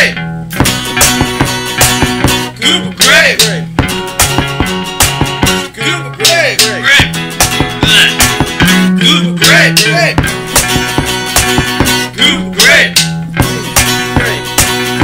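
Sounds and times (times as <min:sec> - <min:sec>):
acoustic guitar: 0:00.0 - 0:15.0
bass guitar: 0:00.0 - 0:15.0
drumsticks beating on carpeted floor: 0:00.6 - 0:02.5, 0:03.4 - 0:05.7, 0:07.0 - 0:08.7, 0:10.2 - 0:12.1, 0:13.0 - 0:15.0.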